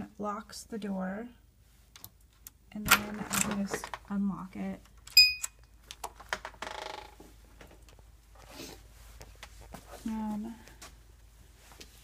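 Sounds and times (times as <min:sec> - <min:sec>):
door lock electronic beep: 0:05.1 - 0:05.6.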